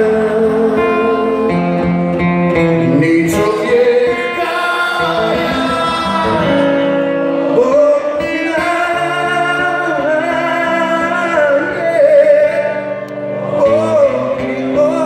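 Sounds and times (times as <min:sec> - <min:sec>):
guitar accompaniment: 0:00.0 - 0:15.0
men singing in harmony: 0:02.9 - 0:15.0.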